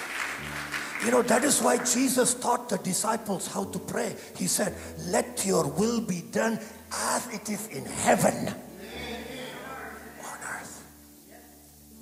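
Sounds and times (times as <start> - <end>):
faint background tones: 1.0 - 12.0.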